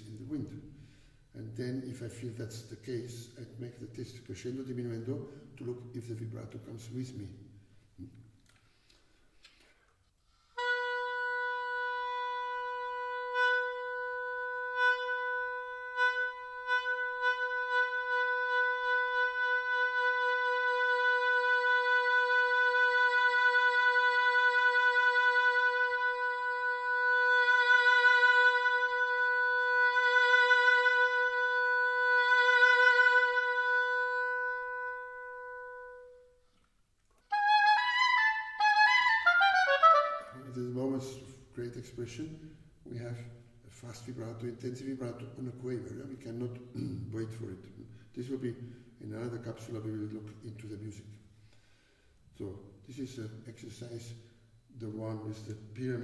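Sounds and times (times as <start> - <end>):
oboe long note with vibrato: 10.6 - 36.3.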